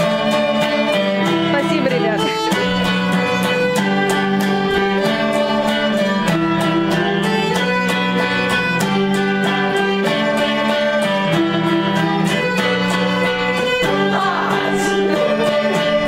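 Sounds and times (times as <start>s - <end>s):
electric guitar strumming: 0.0s - 16.0s
violin melody: 0.0s - 16.0s.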